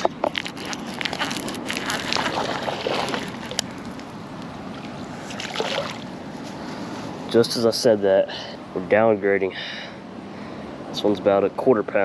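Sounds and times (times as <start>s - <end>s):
fish splashing at water surface: 1.8s - 3.9s, 4.8s - 6.2s.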